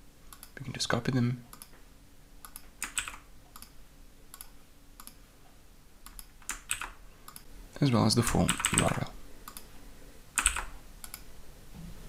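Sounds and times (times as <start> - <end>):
computer keyboard and mouse clicks: 2.4 - 5.2, 6.0 - 7.5, 8.3 - 9.7, 10.4 - 11.3.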